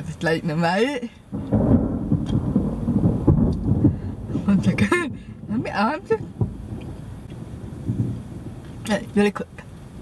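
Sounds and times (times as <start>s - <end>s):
thunder rumbling: 0.1s - 10.0s.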